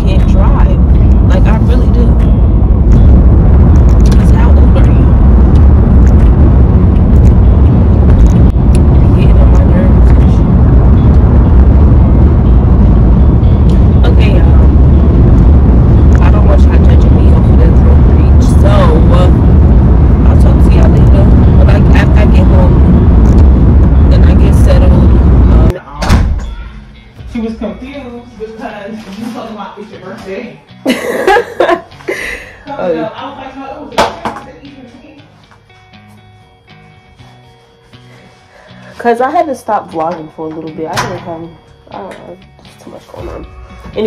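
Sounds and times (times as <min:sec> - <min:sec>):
car road and engine rumble: 0:00.0 - 0:25.8.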